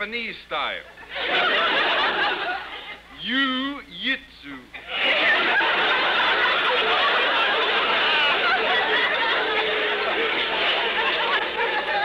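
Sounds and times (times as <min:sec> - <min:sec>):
studio audience laughing: 0:01.0 - 0:03.2, 0:04.8 - 0:12.0.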